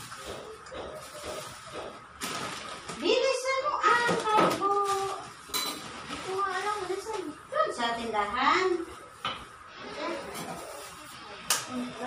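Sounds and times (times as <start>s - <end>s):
kitchen clatter: 0.0s - 7.3s.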